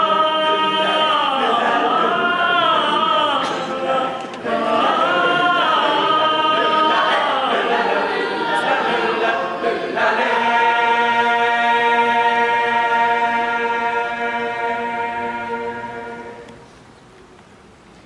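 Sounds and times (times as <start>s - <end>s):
boys' choir singing a cappella: 0.0s - 16.6s.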